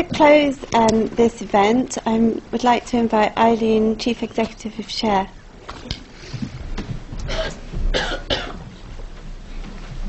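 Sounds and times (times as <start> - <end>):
person coughing: 7.3 - 8.6.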